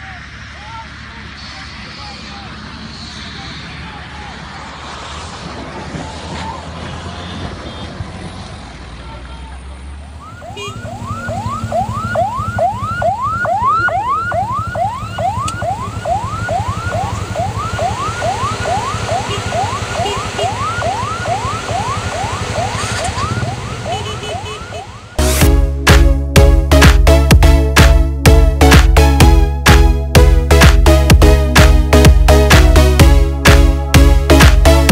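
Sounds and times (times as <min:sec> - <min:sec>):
siren whooping: 0:10.1 - 0:25.8.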